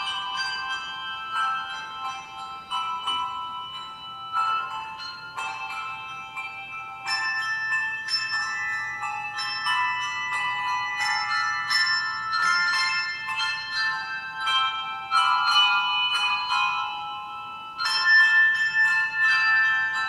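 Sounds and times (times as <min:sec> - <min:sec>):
bell tones playing slow melody: 0:00.0 - 0:20.0.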